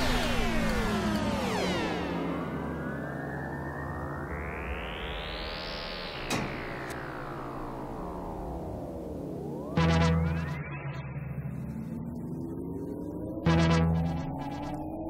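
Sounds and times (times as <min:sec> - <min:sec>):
falling pitch sweeps: 0:00.0 - 0:15.0
low electronic hum: 0:00.0 - 0:15.0
rising and falling sweep: 0:00.0 - 0:15.0.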